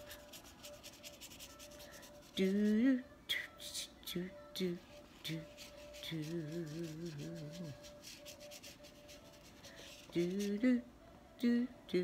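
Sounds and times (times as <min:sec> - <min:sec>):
paintbrush brushing on paper: 0:00.0 - 0:02.8, 0:04.8 - 0:10.6
woman singing wordless syllables: 0:02.1 - 0:08.0, 0:09.9 - 0:12.0.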